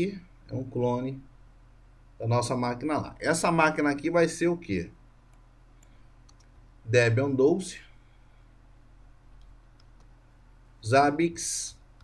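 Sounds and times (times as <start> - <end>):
faint keyboard clicks: 5.3 - 6.6, 9.3 - 10.2.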